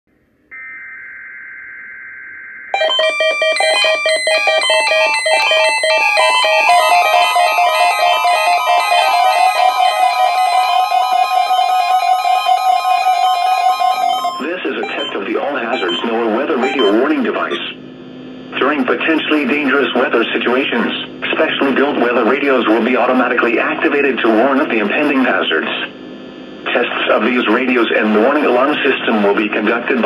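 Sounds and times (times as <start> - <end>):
electronic alert beeping melody: 2.7 - 17.7.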